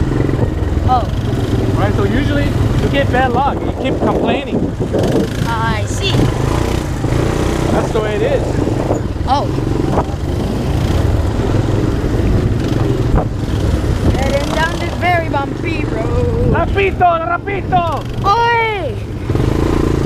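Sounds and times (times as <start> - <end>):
quad bike engine running: 0.0 - 20.0.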